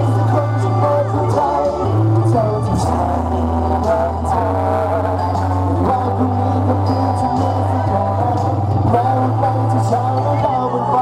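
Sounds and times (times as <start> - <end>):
live band music: 0.0 - 11.0
steady bass line: 0.0 - 11.0.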